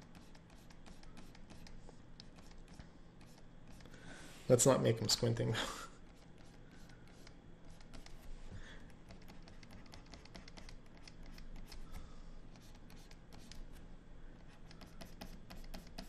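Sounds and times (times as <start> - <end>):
stylus scratching and tapping tablet: 0.0 - 3.9, 6.0 - 13.8, 14.4 - 16.0
low steady hum: 0.0 - 16.0.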